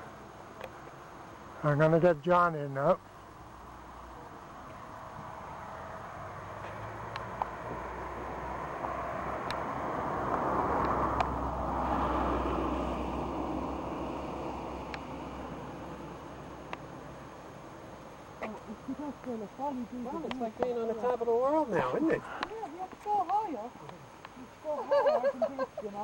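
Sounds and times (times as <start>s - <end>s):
vehicle passing: 3.5s - 22.8s.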